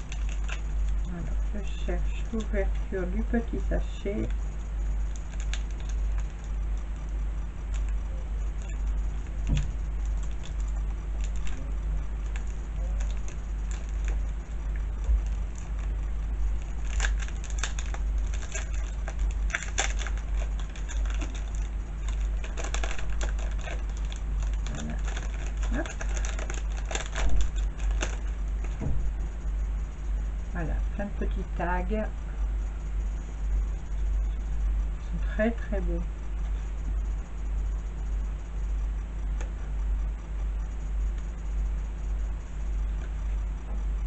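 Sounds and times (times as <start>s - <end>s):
steady low hum: 0.0s - 44.0s
plastic sachet crinkling: 8.6s - 14.6s, 15.2s - 28.8s.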